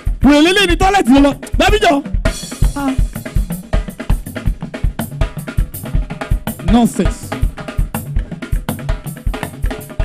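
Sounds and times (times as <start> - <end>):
bass drum strikes: 0.0 - 10.0.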